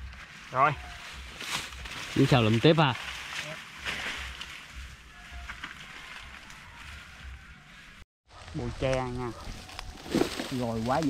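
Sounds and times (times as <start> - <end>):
dry leaves crackling and rustling: 0.0 - 11.0.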